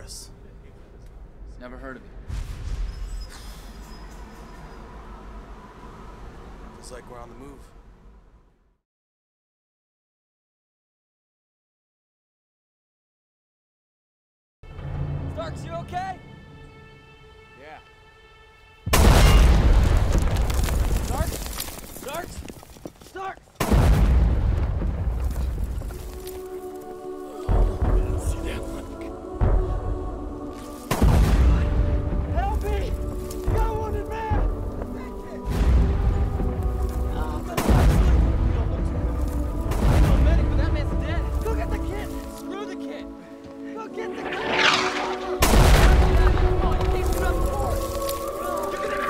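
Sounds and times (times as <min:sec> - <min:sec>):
film score music: 0:14.6 - 0:21.5, 0:23.2 - 0:49.0
artillery shell explosion: 0:18.9 - 0:21.6, 0:23.6 - 0:25.5, 0:44.4 - 0:46.5
explosion rumbling: 0:18.9 - 0:22.0, 0:23.6 - 0:26.0, 0:30.9 - 0:33.0, 0:37.6 - 0:41.4, 0:44.3 - 0:48.0.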